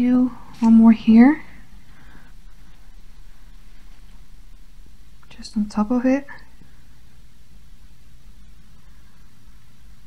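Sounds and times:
faint background hiss: 0:00.0 - 0:10.0
low steady hum: 0:00.0 - 0:10.0.

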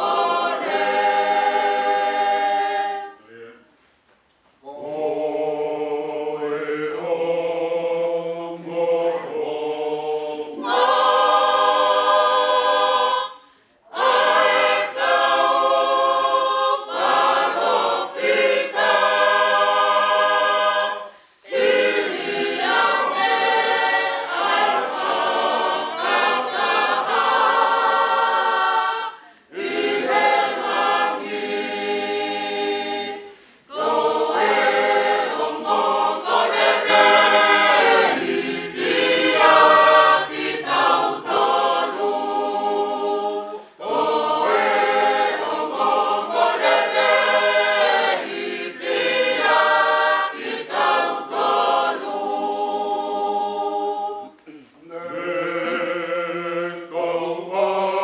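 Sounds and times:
choir singing unaccompanied: 0:00.0 - 0:03.8, 0:04.6 - 0:58.0.

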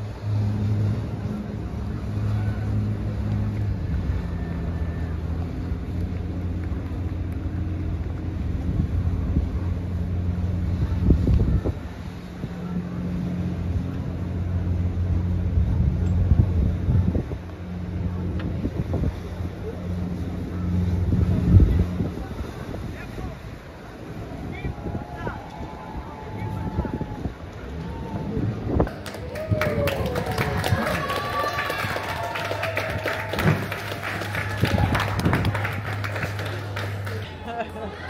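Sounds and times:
boat engine droning: 0:00.0 - 0:38.0
wind gusting across microphone: 0:14.4 - 0:37.1.

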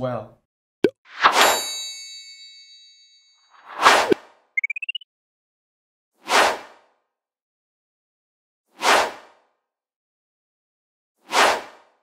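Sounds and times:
bright metallic ding: 0:01.3 - 0:03.5.

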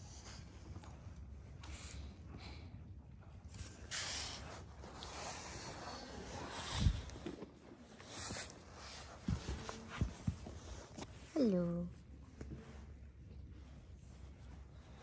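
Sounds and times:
pony sniffing and blowing breath: 0:03.6 - 0:11.1.

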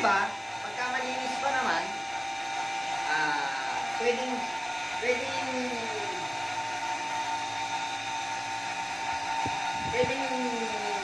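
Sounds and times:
electric motor whine: 0:00.0 - 0:11.0.

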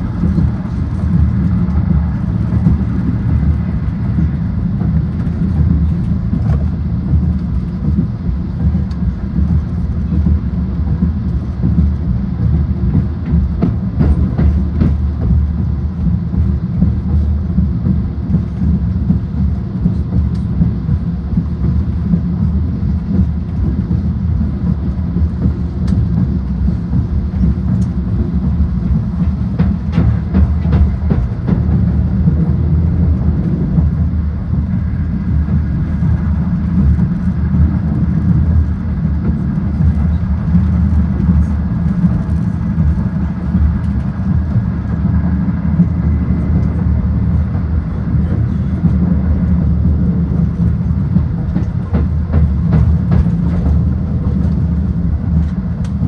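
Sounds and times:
train rumbling at speed: 0:00.0 - 0:56.0.

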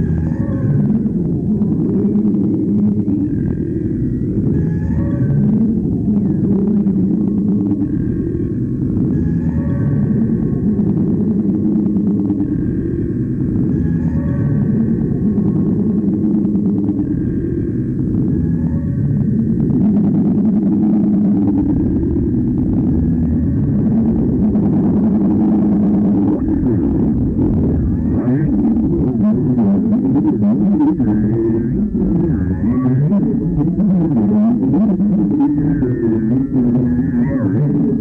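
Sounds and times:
voice in reverberation: 0:00.0 - 0:38.0
low rumbling wash: 0:10.0 - 0:38.0.

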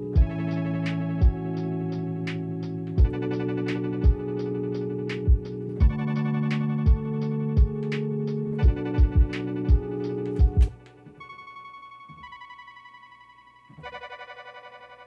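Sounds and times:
high chords with pulsing flutter: 0:00.0 - 0:15.0
keyboard chords: 0:00.0 - 0:15.0
kick drum hits: 0:00.2 - 0:00.4, 0:03.0 - 0:03.2, 0:04.0 - 0:04.2, 0:05.3 - 0:06.0, 0:06.9 - 0:07.8, 0:08.6 - 0:10.8.

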